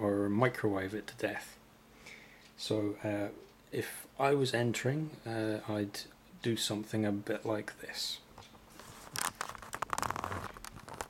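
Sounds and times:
camera handling rustles and clicks: 8.4s - 11.0s.

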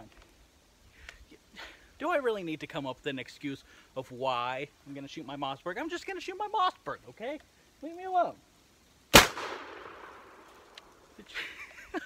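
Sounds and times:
faint click: 1.0s - 1.2s, 10.5s - 11.0s
shotgun blast with echo: 9.1s - 10.4s.

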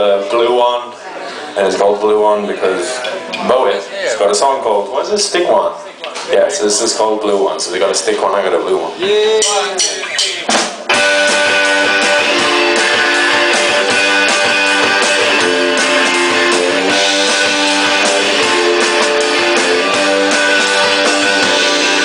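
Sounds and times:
live rock band playing: 9.0s - 22.0s
strummed electric guitars: 9.4s - 22.0s.

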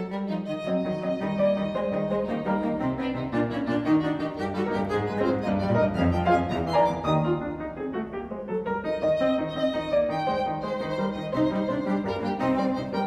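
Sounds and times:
piano trio playing fast passage: 0.0s - 13.0s.

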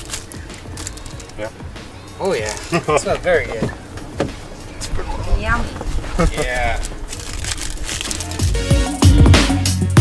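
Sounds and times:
plastic packaging crinkling: 0.0s - 1.5s, 6.3s - 8.8s
electronic music with heavy bass: 8.1s - 10.0s.

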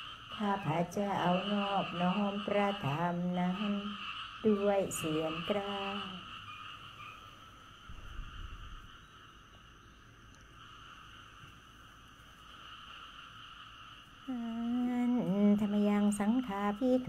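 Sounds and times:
faint steady hiss: 0.0s - 17.0s
brief low rumble: 7.9s - 9.0s.

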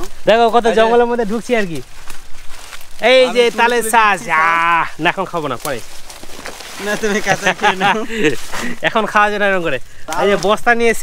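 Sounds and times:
man's excited exclamation: 3.2s - 5.0s.

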